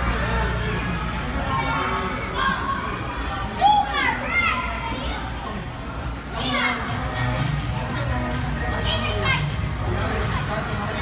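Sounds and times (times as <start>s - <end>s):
children calling and chattering: 0.0s - 11.0s
crowd din: 0.0s - 11.0s.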